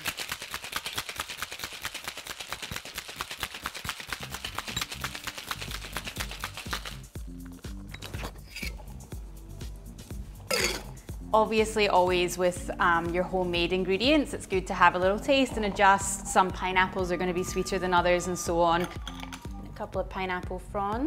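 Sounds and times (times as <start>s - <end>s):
ice rattling in cocktail shaker: 0.0s - 7.1s
background music with bass line: 4.2s - 21.0s.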